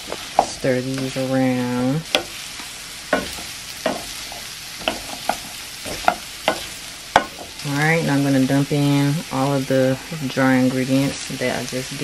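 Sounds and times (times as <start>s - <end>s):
apples sizzling in butter: 0.0s - 12.0s
wooden spoon scraping a pan: 2.1s - 8.5s.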